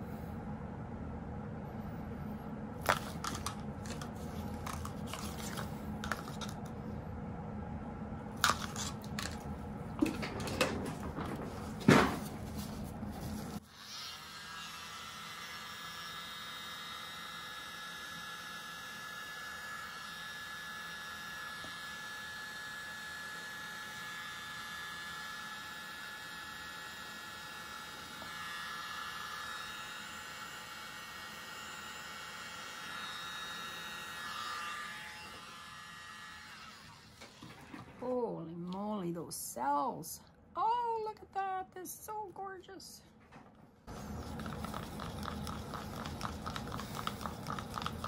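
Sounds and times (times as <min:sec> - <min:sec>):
electric blower buzzing: 0:13.6 - 0:37.3.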